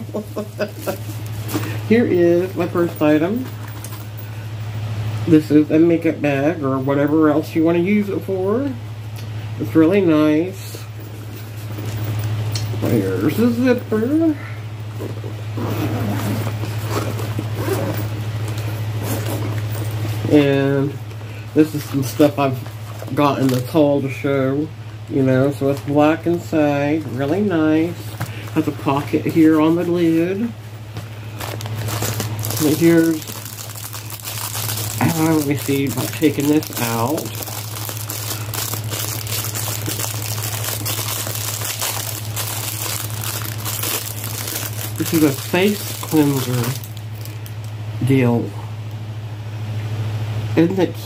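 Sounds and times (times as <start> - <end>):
packaging crinkling: 0.0 - 1.8, 25.5 - 30.5, 31.2 - 47.8
steady low hum: 0.0 - 51.0
zipper opening: 15.0 - 20.0.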